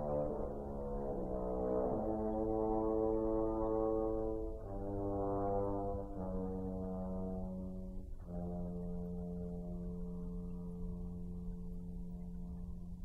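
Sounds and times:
french horn long notes: 0.0 - 13.0.

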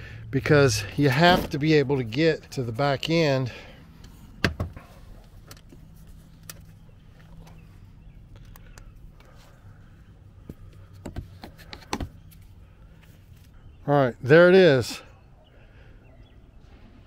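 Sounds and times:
low steady hum: 0.0 - 14.4
plastic liner clicking and scraping: 10.7 - 12.4.

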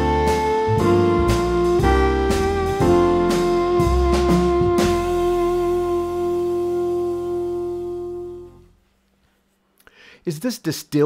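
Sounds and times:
held melody note: 0.0 - 8.8
jazz band backing track: 0.0 - 8.8.

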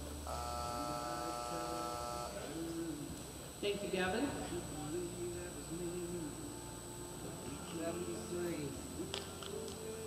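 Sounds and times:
electric time buzzer tone: 0.2 - 2.4.

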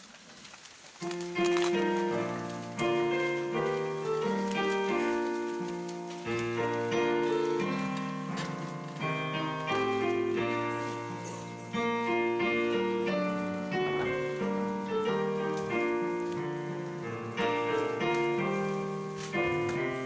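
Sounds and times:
piano playing slow chords: 1.0 - 20.0.

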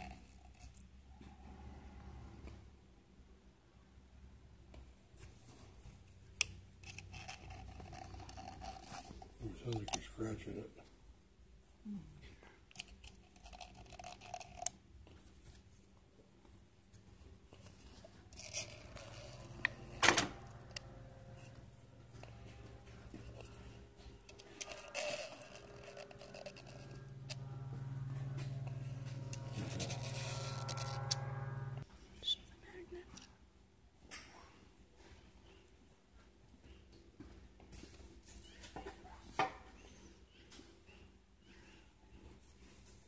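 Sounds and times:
steady low hum: 16.2 - 33.3.

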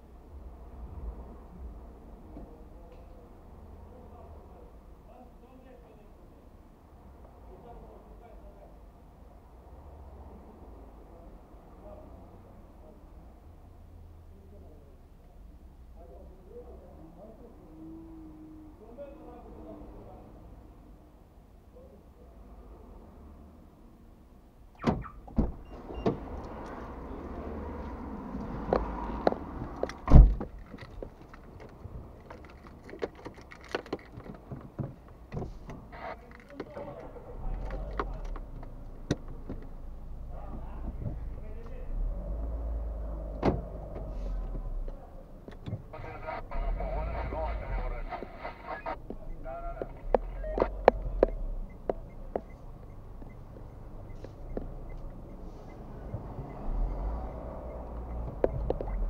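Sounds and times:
heavy tyres knocking and thudding: 28.5 - 35.9.

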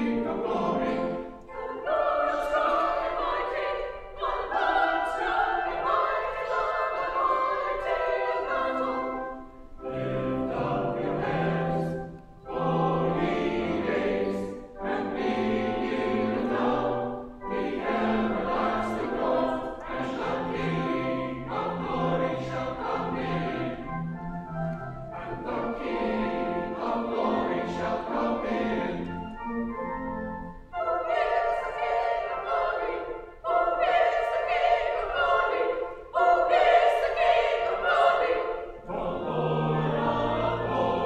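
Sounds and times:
church choir singing: 0.0 - 41.0.

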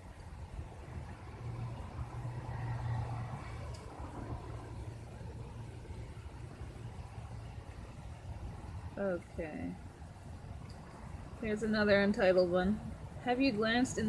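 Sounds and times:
vehicle engine hum: 0.0 - 14.0.

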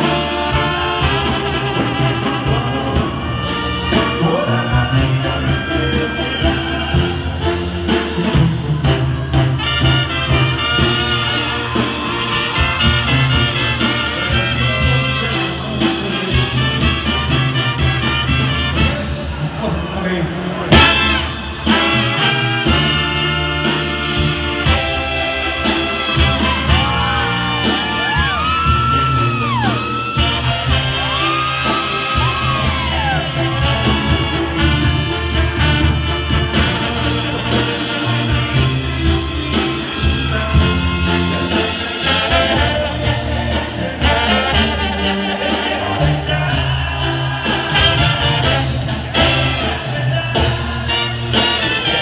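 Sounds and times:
brass band playing: 0.0 - 52.0
whoops: 26.4 - 33.5.

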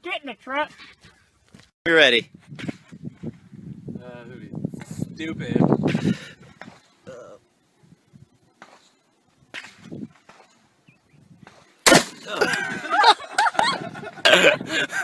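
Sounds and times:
shotgun shot: 11.5 - 12.4
loud laughter: 12.3 - 15.0.

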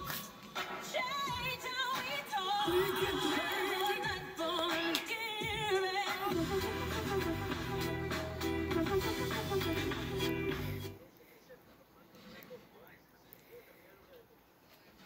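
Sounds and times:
faint room noise: 0.0 - 15.0
singer with vibrato: 0.9 - 10.5
music with bass line: 6.3 - 10.9.

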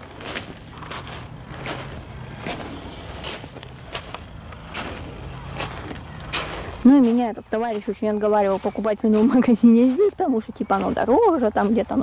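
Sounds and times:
footsteps crunching on pebbles: 0.0 - 12.0.

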